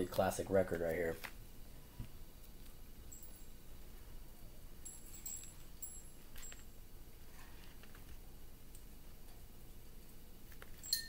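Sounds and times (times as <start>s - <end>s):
faint high chime-like tinkles: 3.0s - 7.0s, 10.7s - 11.0s.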